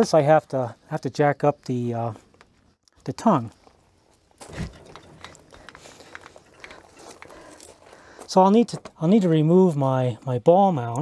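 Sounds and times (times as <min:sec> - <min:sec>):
crank clicks and scrapes: 0:04.4 - 0:07.8.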